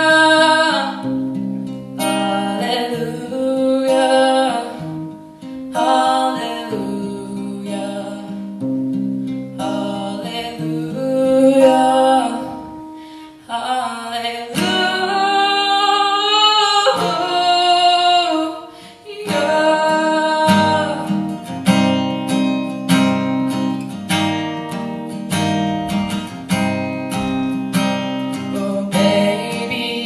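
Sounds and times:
woman singing: 0:00.0 - 0:24.0, 0:26.5 - 0:30.0
acoustic guitar strumming: 0:00.0 - 0:30.0.

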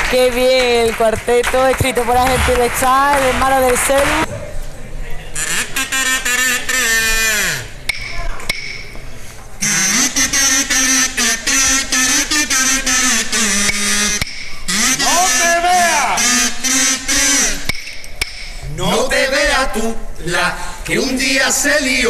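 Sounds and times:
buzzy kazoos playing: 0:09.6 - 0:17.9.

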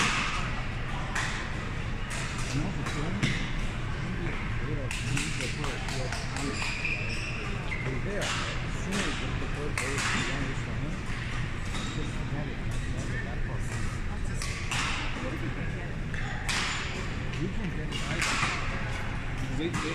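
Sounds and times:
players' voices: 0:00.0 - 0:19.9
rackets striking shuttlecock: 0:04.8 - 0:15.3, 0:16.1 - 0:19.9.

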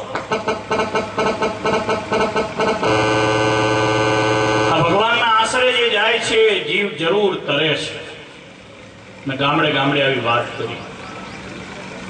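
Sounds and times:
harmonium playing: 0:00.2 - 0:05.0.

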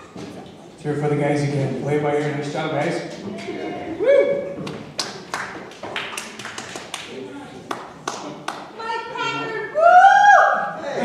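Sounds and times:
scattered handclaps: 0:04.6 - 0:07.1, 0:07.7 - 0:08.7.

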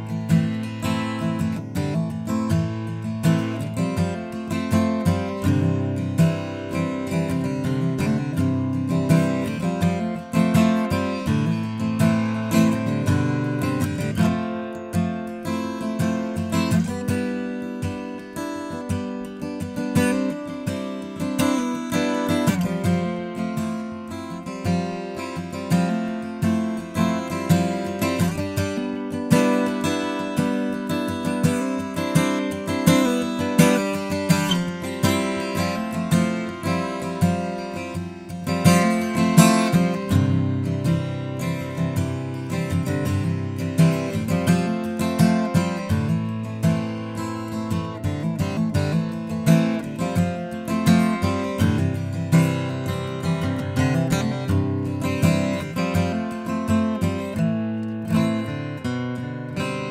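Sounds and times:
acoustic guitar strummed and plucked: 0:00.0 - 0:59.9.

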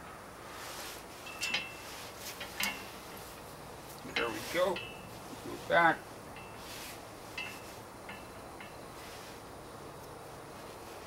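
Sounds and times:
metal climbing hardware clinking: 0:01.2 - 0:01.8, 0:02.4 - 0:02.9, 0:03.9 - 0:05.2, 0:06.3 - 0:06.7, 0:07.3 - 0:08.8.

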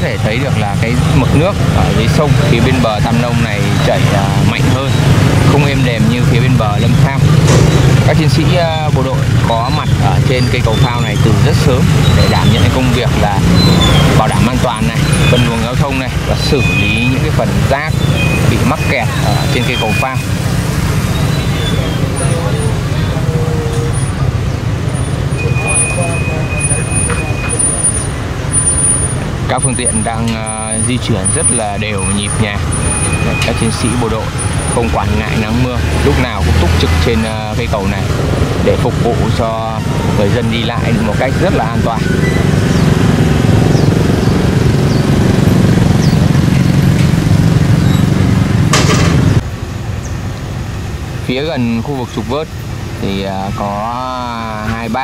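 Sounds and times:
traffic crossing metal bridge: 0:00.0 - 0:55.0.

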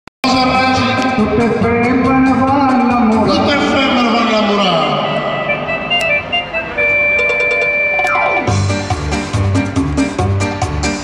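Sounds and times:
electronic keyboard synth music: 0:05.1 - 0:10.3.

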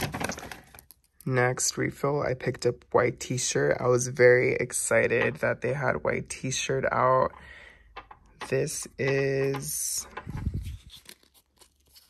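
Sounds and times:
plastic and paper rustling: 0:00.0 - 0:01.1, 0:09.4 - 0:12.0.

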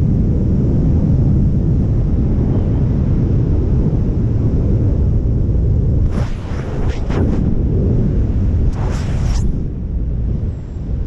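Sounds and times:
heavy wind rush on microphone: 0:00.0 - 0:11.0.

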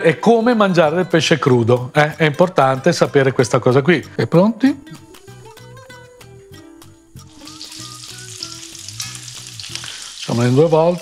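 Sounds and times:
fish sizzling in hot oil: 0:07.2 - 0:11.0.

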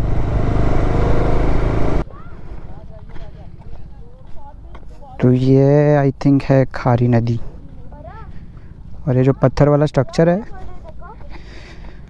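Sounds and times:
motorcycle engine running: 0:00.0 - 0:02.1
quiet outdoor background: 0:00.0 - 0:12.0.

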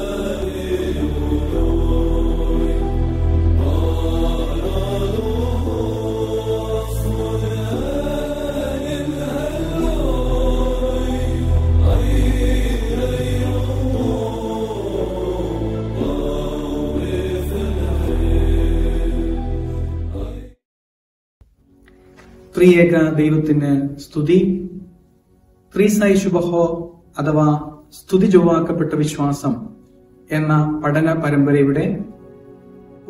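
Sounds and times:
steady low drone: 0:00.0 - 0:20.5
person chanting: 0:00.0 - 0:20.6.

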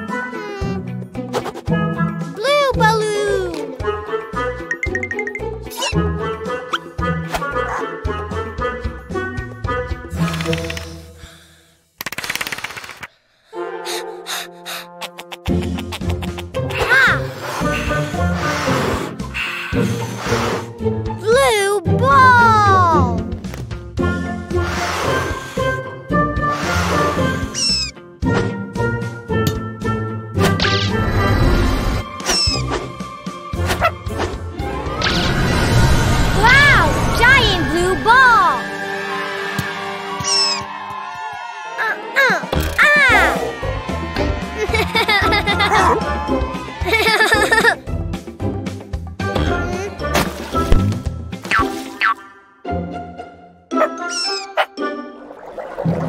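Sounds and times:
gentle cartoon music: 0:00.0 - 0:11.7, 0:13.3 - 0:56.0
cartoon giggle: 0:14.9 - 0:17.2, 0:44.6 - 0:46.0, 0:46.8 - 0:47.8
balloon deflating hiss: 0:17.2 - 0:20.7, 0:24.6 - 0:25.8, 0:26.5 - 0:27.7
squeaky cartoon animal call: 0:27.6 - 0:27.9, 0:32.2 - 0:32.7, 0:40.2 - 0:40.7, 0:54.0 - 0:54.7.

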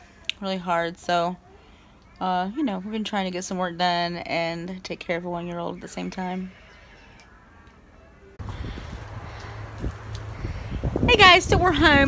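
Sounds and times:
wind buffeting microphone: 0:08.4 - 0:12.0.

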